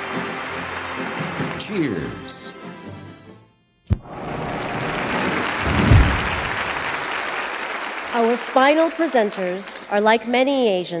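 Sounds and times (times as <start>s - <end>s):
large audience applauding: 0.0s - 2.3s, 4.0s - 11.0s
deep low thump: 5.7s - 6.7s.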